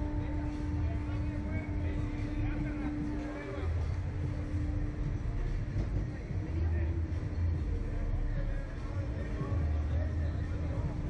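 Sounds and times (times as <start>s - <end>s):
constant hum: 0.0s - 11.0s
low rumble: 0.0s - 11.0s.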